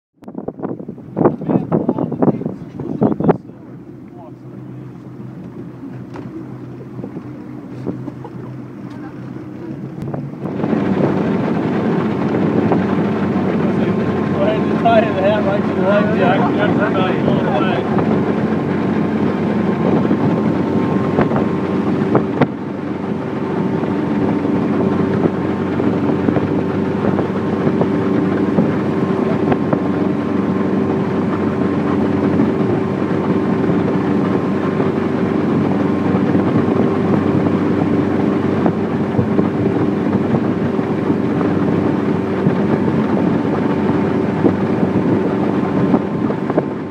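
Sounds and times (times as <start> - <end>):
motorboat engine humming: 0.2 - 46.9
rushing wind: 0.2 - 46.9
water rushing: 0.7 - 46.9.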